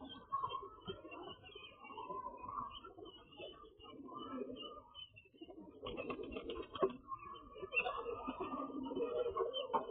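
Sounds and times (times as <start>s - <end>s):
pigeons cooing: 0.0s - 9.9s.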